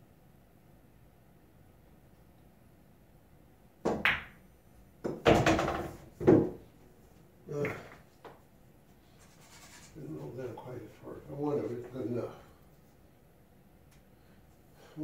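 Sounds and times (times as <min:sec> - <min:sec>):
billiard balls clacking: 0:03.9 - 0:04.4, 0:05.0 - 0:06.7, 0:07.5 - 0:08.4
cue tip striking cue ball: 0:03.9 - 0:04.4.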